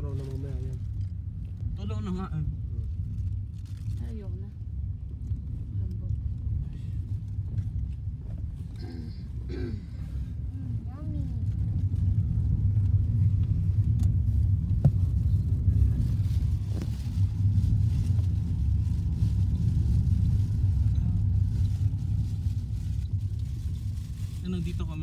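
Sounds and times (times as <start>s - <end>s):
car driving rumble from inside: 0.0s - 25.0s.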